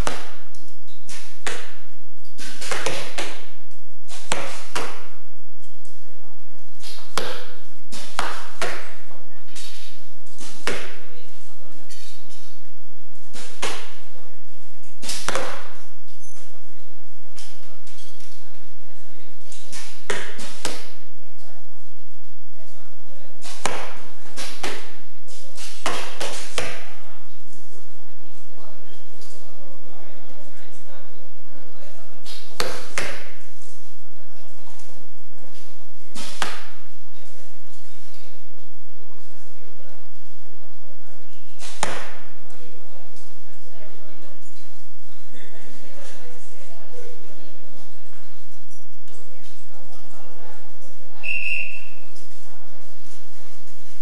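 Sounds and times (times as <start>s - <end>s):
arrow hitting target: 0.0s - 5.2s, 6.8s - 9.0s, 13.3s - 14.1s, 15.0s - 15.9s, 19.5s - 21.0s, 23.4s - 27.0s, 36.1s - 36.8s, 41.5s - 42.3s.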